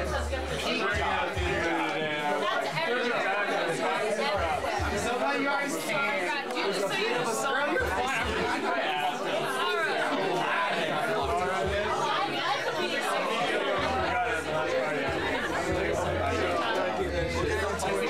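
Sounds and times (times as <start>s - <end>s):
party chatter: 0.0s - 18.0s.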